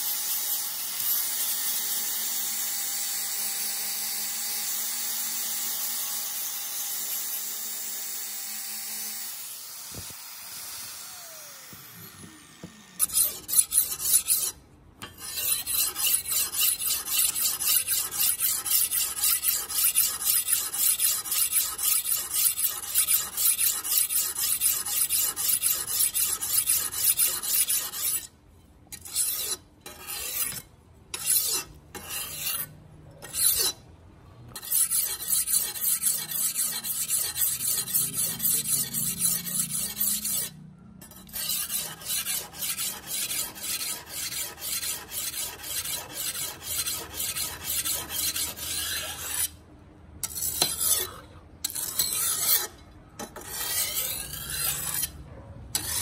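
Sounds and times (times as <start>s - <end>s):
blade scraping on sharpening stone: 13.0s - 33.8s, 34.5s - 49.6s, 50.2s - 56.0s.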